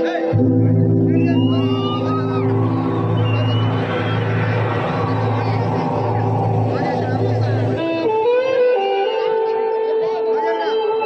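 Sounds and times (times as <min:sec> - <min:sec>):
electronic keyboard melody: 0:00.0 - 0:09.2
droning keyboard note: 0:00.3 - 0:08.2.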